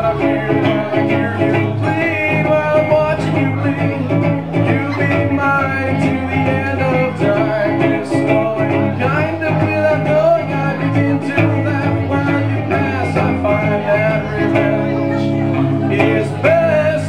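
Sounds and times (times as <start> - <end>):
acoustic guitars playing: 0.0 - 17.0.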